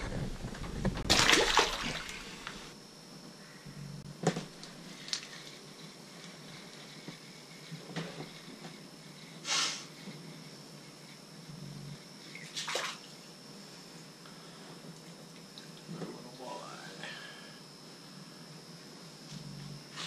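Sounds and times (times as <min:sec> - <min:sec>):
short hiss: 0:09.4 - 0:09.9.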